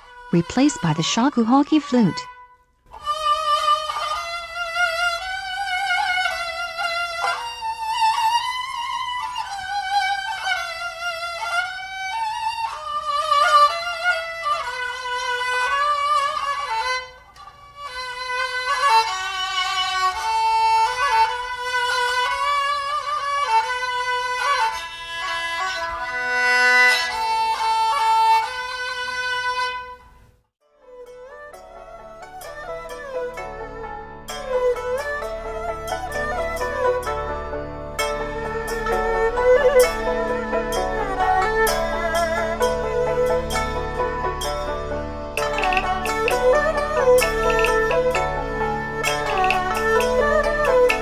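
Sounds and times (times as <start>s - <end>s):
bowed string solo melody: 30.9s - 51.0s.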